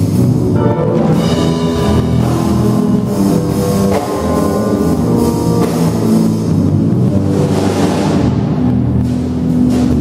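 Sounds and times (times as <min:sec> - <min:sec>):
drum kit: 0:00.0 - 0:10.0
electric bass guitar: 0:00.0 - 0:10.0
stage keyboard chords: 0:00.0 - 0:10.0.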